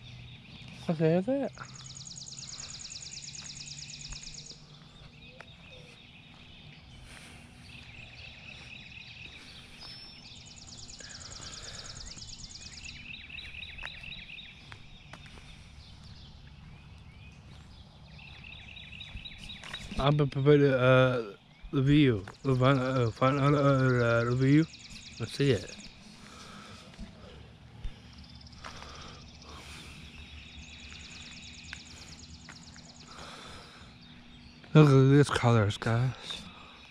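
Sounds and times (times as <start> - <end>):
rapid dry bird trill: 0.0 - 15.0, 17.8 - 36.9
songbirds singing: 0.0 - 36.9.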